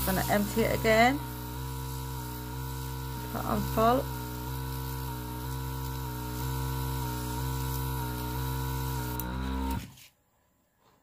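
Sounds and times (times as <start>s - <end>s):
airbrush compressor humming: 0.0s - 10.1s.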